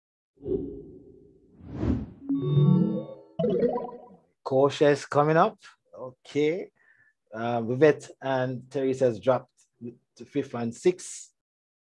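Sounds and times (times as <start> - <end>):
rising whoosh: 0.4 - 2.3.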